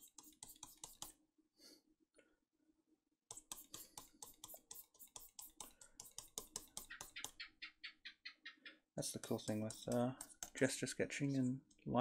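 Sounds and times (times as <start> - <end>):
stylus scratching on drawing tablet: 0.0 - 1.2, 3.3 - 7.7, 9.0 - 11.4.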